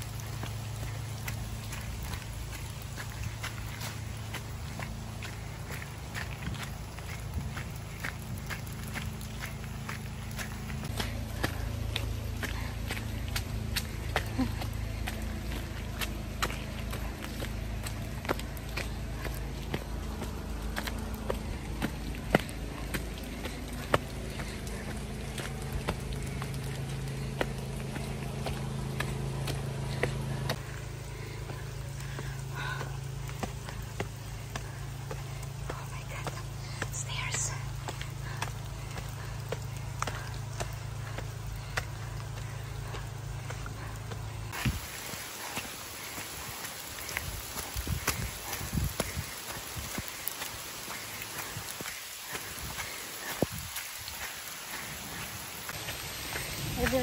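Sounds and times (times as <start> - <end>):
footsteps on wet forest path: 0.0 - 57.0.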